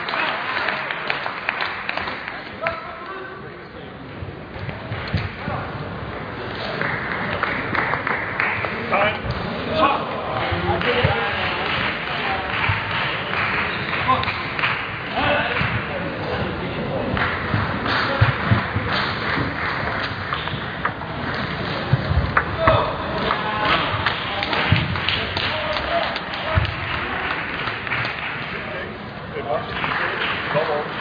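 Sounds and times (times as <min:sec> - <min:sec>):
crowd and player chatter: 0:00.0 - 0:31.0.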